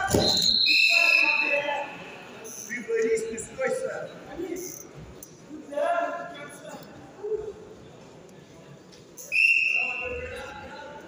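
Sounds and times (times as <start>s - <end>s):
voices echoing in sports hall: 0.0s - 11.0s.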